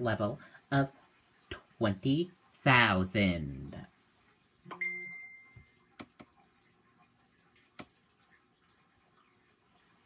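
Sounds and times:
high ringing tone: 4.7s - 5.9s.

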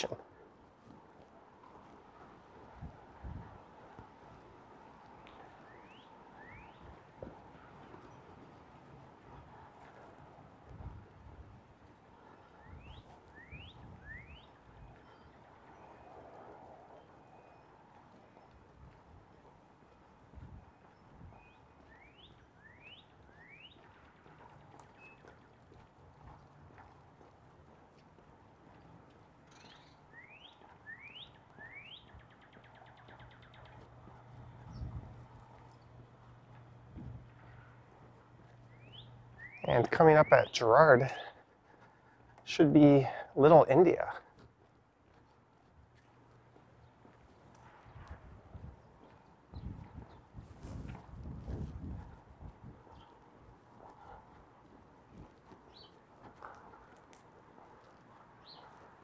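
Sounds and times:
quiet street background: 0.0s - 59.0s
songbird whistling: 5.7s - 6.8s, 12.6s - 14.5s, 21.4s - 23.8s, 29.6s - 33.5s, 38.7s - 39.7s.

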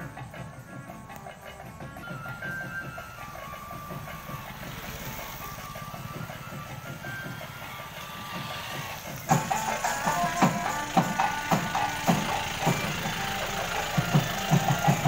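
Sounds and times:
faint music: 0.0s - 15.0s
music with strong drumbeats: 0.0s - 15.0s
vehicle engine throbbing: 0.0s - 15.0s.

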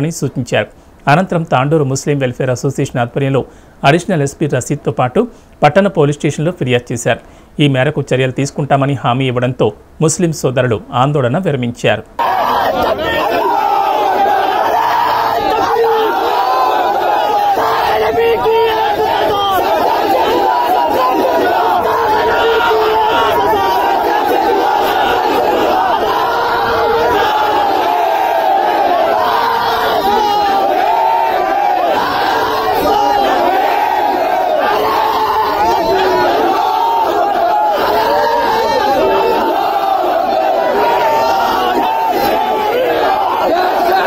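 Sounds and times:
crowd of men shouting slogans: 12.2s - 44.0s.

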